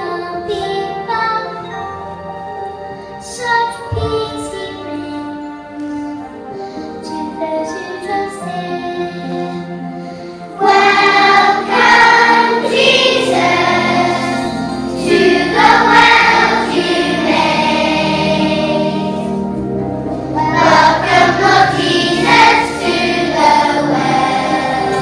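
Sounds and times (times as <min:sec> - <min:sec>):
low musical accompaniment: 0:00.0 - 0:25.0
children singing into microphone: 0:07.0 - 0:19.5, 0:20.3 - 0:25.0.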